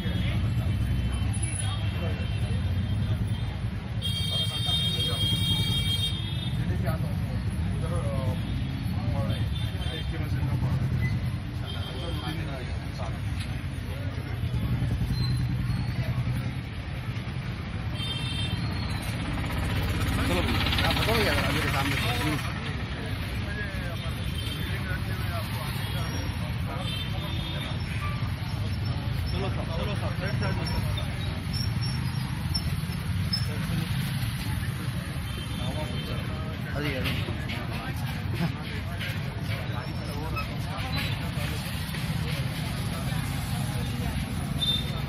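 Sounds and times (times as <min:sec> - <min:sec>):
faint crowd voices: 0:00.0 - 0:45.0
road traffic rumble: 0:00.0 - 0:45.0.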